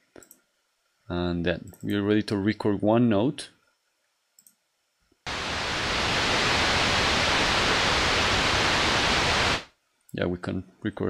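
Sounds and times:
synth white noise: 0:05.3 - 0:09.8.

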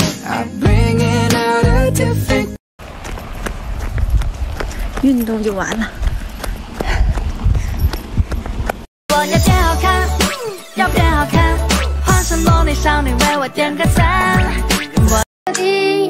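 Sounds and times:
pop music: 0:00.0 - 0:02.6, 0:09.1 - 0:16.0
rumbling rustling noise: 0:02.8 - 0:08.9.

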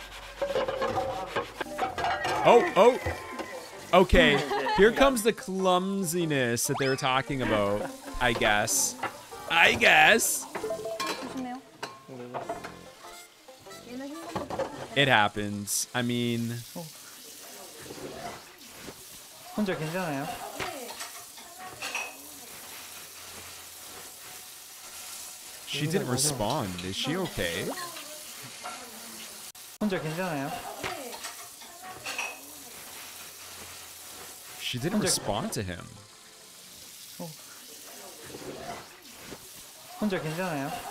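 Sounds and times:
tap water running: 0:00.0 - 0:40.9
dishes and utensils clattering: 0:00.1 - 0:04.6, 0:07.4 - 0:13.4, 0:14.1 - 0:15.0, 0:20.2 - 0:22.7, 0:30.5 - 0:33.0
soft background music: 0:02.6 - 0:14.8.

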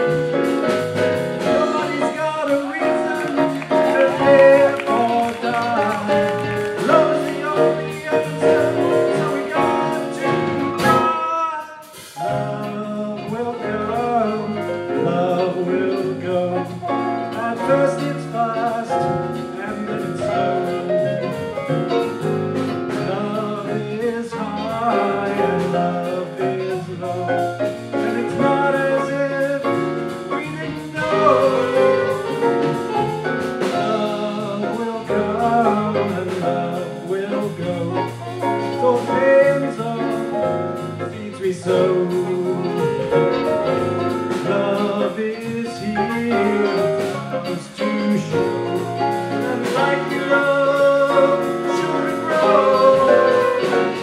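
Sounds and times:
electric guitars: 0:00.0 - 0:11.2, 0:12.0 - 0:54.0
saxophone: 0:00.0 - 0:12.6, 0:19.0 - 0:23.8, 0:24.5 - 0:35.8, 0:36.4 - 0:54.0
live band playing: 0:00.0 - 0:54.0
man singing: 0:00.0 - 0:54.0.

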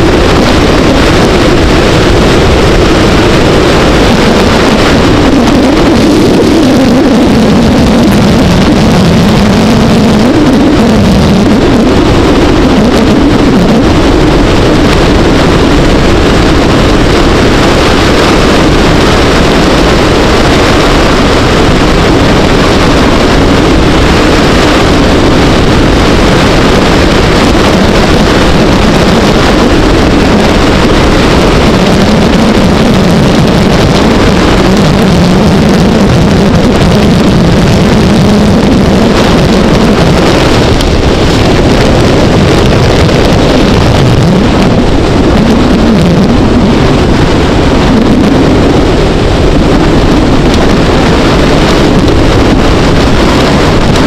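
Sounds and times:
motorcycle engine running: 0:00.0 - 0:54.0
wind rush on microphone: 0:00.0 - 0:54.0.

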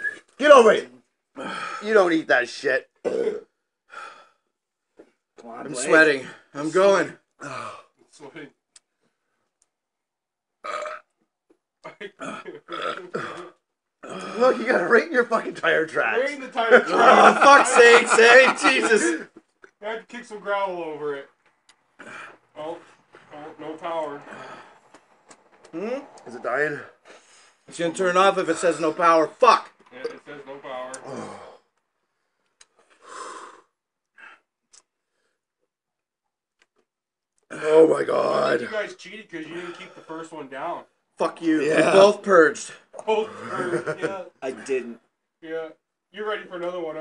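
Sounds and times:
man burping: 0:03.0 - 0:03.6, 0:07.4 - 0:07.9, 0:10.6 - 0:11.2, 0:11.8 - 0:14.6, 0:30.9 - 0:31.7
man breathing heavily: 0:03.9 - 0:04.5, 0:24.2 - 0:25.0.

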